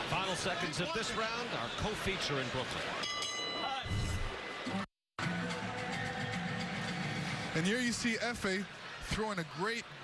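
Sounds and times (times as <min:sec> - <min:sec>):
boxing ring bell: 0:03.0 - 0:03.8.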